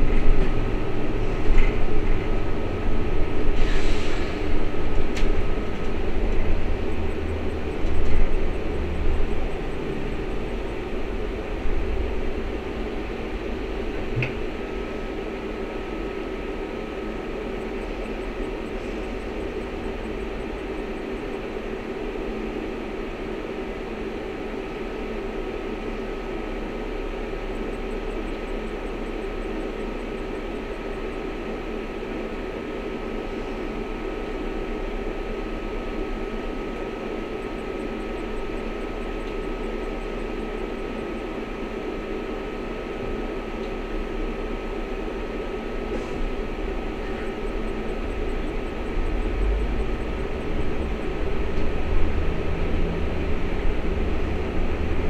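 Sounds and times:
fans and electrical drone: 0.0 - 55.0.

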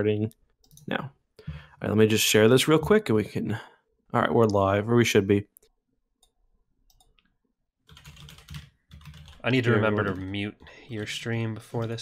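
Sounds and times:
computer mouse clicks: 5.6 - 7.3
keyboard typing: 6.2 - 7.2, 7.9 - 12.0.

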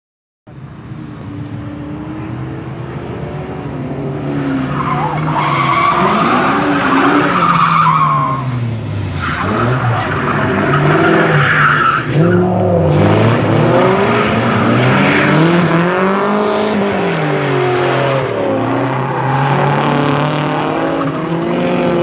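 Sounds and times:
car engines revving: 0.5 - 22.0.

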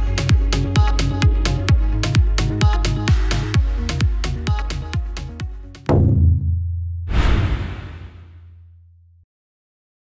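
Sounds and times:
whoosh sound effect: 7.1 - 8.4.

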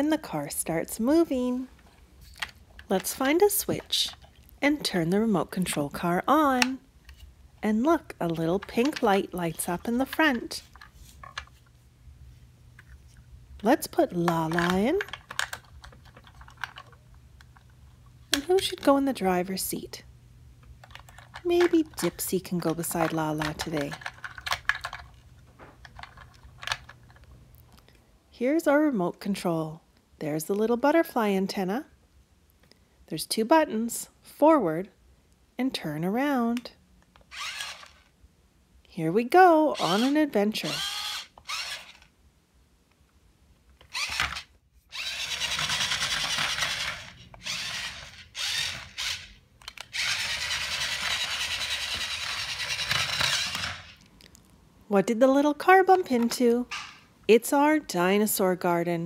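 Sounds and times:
plastic toy figures clicking: 20.8 - 25.1
toy car motor whirring: 37.2 - 38.1, 39.8 - 42.1, 43.8 - 54.0.

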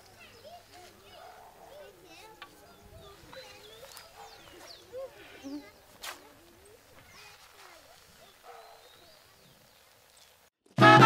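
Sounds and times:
distant voices: 0.0 - 10.2
high chirping calls: 0.0 - 10.4.

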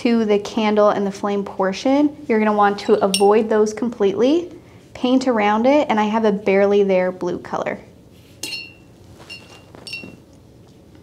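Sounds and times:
paintbrush clinking on glass jar: 8.4 - 10.3.

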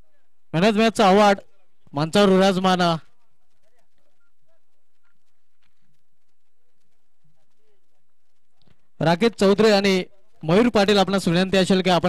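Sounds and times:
public-address announcements: 0.0 - 5.5, 9.0 - 12.0
distant people talking: 1.4 - 11.7.

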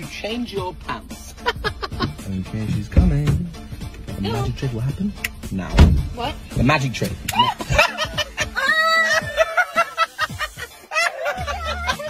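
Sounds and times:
woman laughing: 1.4 - 2.2, 7.3 - 12.0
woman shrieking: 8.4 - 9.6.

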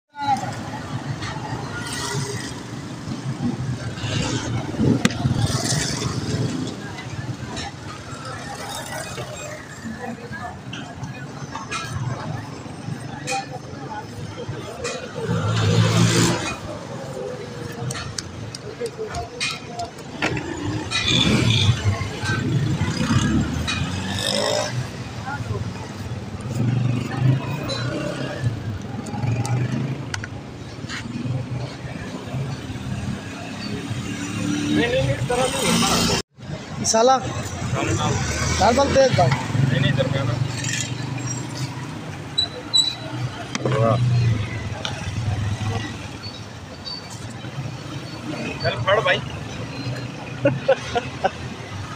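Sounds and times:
indistinct voices of people: 0.1 - 51.9
traffic rumble: 0.2 - 51.9.

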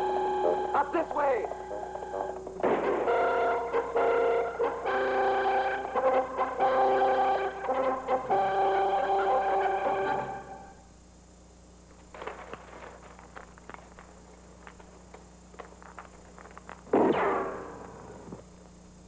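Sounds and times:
orchestral brass chords: 3.0 - 10.8.

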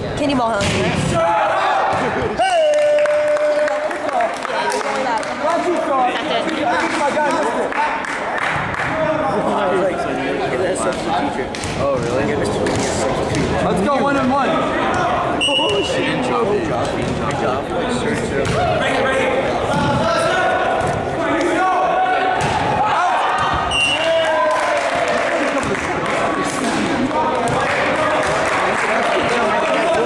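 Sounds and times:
people calling and shouting: 0.0 - 30.0
volleyballs struck and bouncing: 0.5 - 1.2, 10.9 - 15.8, 18.3 - 18.8, 22.3 - 23.8, 24.9 - 28.5
whistle blasts: 15.4 - 16.0, 23.7 - 24.2.

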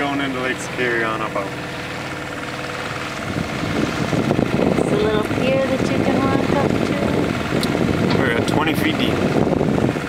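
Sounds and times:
boat motor running: 0.0 - 10.0.

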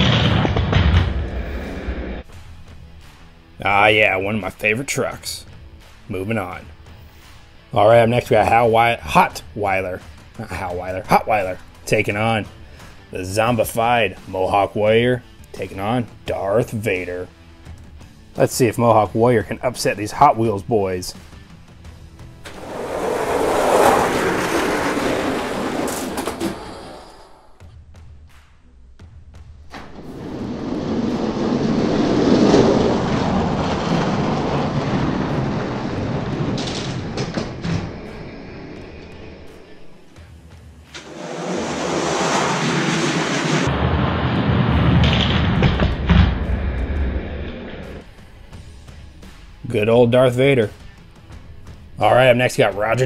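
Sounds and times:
toy trucks rolling on plastic track: 22.5 - 27.0.

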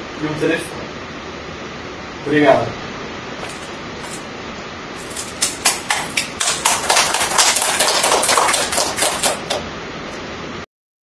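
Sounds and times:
audience applauding: 5.4 - 9.6.

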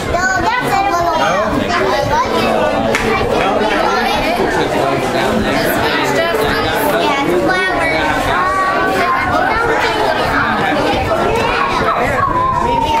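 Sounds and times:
crowd of people chattering: 0.0 - 13.0.

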